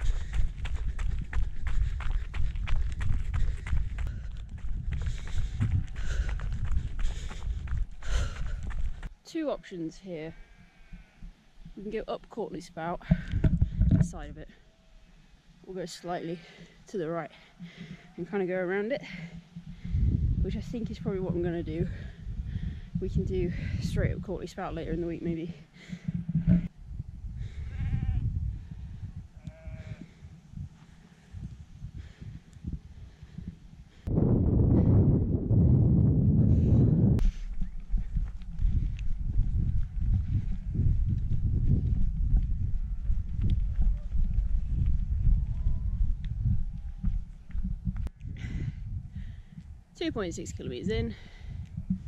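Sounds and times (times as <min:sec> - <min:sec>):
wind on microphone: 0:00.0 - 0:09.1, 0:13.0 - 0:14.6, 0:18.9 - 0:52.0
sheep bleating: 0:10.4 - 0:11.3, 0:29.4 - 0:30.0.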